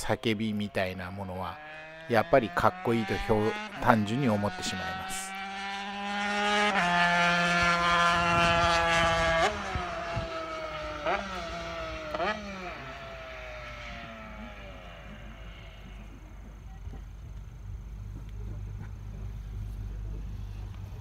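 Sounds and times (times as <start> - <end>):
engine blips downshifting: 0.0 - 21.0
motorcycle engine screaming: 0.1 - 16.4.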